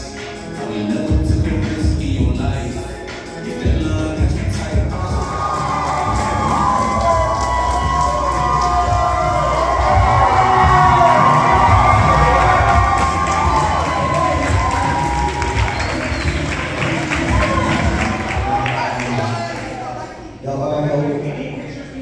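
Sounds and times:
crowd cheering and shouting: 0:04.9 - 0:20.4.

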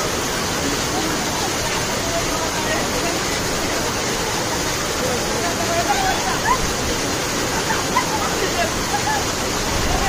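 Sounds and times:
waterfall rushing: 0:00.0 - 0:10.0
distant shouts and voices: 0:00.6 - 0:10.0.

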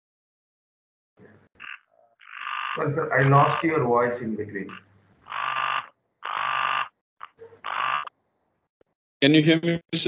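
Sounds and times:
garbled robotic voice bursts: 0:02.7 - 0:04.9.

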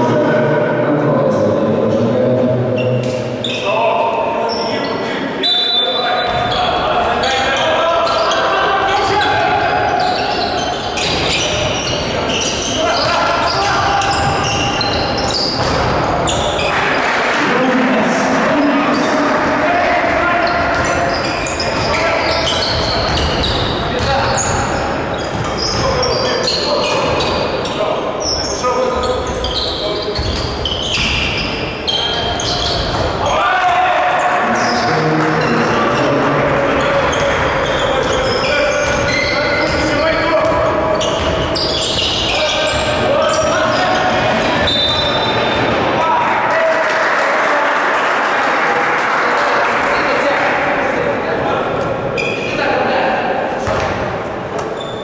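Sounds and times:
voices: 0:00.0 - 0:54.0
basketball bouncing on wooden floor: 0:15.5 - 0:16.5, 0:22.7 - 0:24.1, 0:53.6 - 0:54.0.

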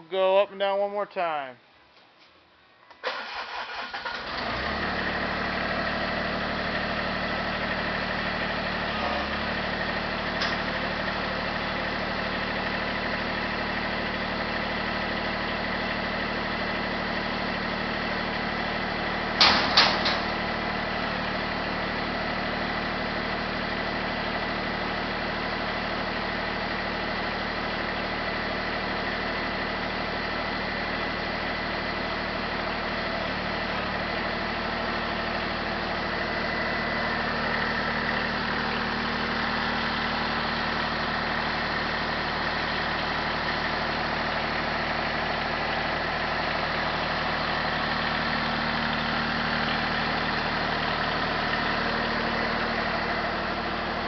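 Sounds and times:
tractor engine running: 0:03.1 - 0:54.0.

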